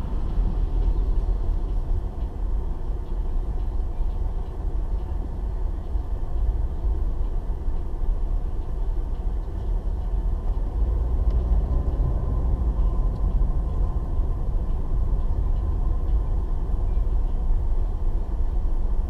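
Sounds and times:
car engine and tyre noise: 0:00.0 - 0:19.0.

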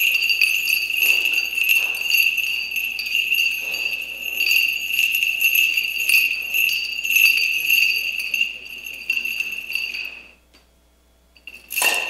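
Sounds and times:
metallic clink of chain: 0:00.0 - 0:10.4, 0:11.4 - 0:12.0
small censer bells ringing: 0:00.0 - 0:10.4, 0:11.4 - 0:12.0.

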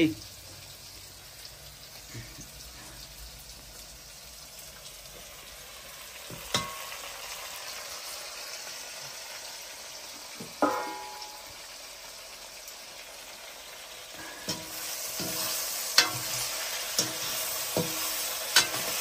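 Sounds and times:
food sizzling in a wok: 0:00.0 - 0:19.0
ladle knocking against wok: 0:10.4 - 0:11.5.

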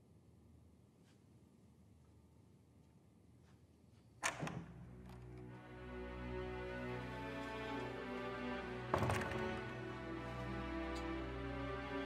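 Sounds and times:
tense music: 0:04.9 - 0:12.0.

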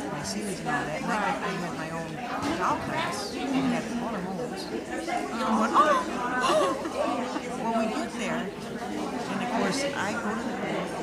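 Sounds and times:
crowd chatter in a hall: 0:00.0 - 0:11.0.

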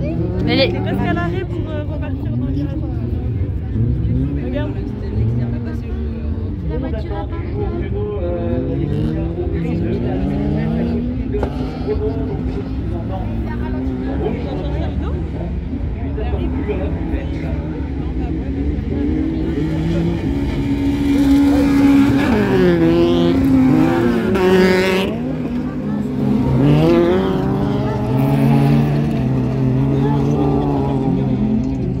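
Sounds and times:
race car engines revving: 0:00.0 - 0:32.0.

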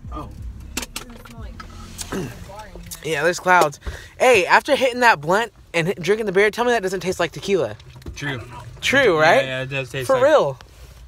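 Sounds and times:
low in-car hum: 0:00.0 - 0:11.0.

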